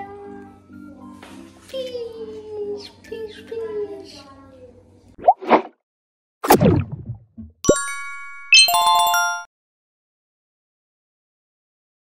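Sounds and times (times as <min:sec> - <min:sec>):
rising pop: 0:06.4 - 0:08.0.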